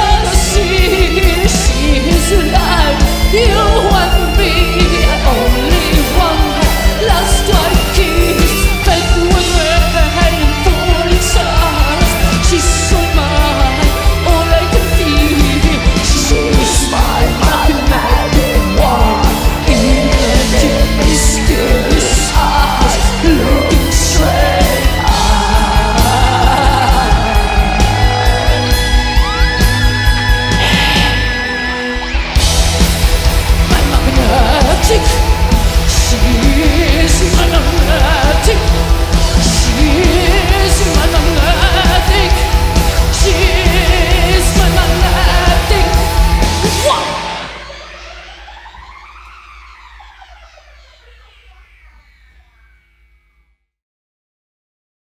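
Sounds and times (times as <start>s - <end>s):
woman singing: 0.0s - 28.5s, 33.5s - 47.5s
metal band playing: 0.0s - 48.9s.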